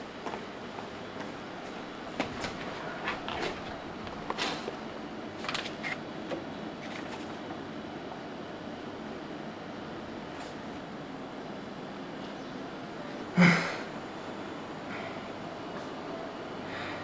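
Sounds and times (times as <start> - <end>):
steady background noise: 0.0 - 17.0.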